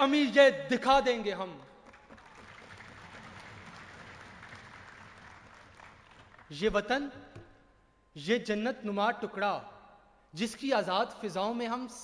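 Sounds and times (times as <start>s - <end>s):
faint audience applause: 1.8s - 6.6s.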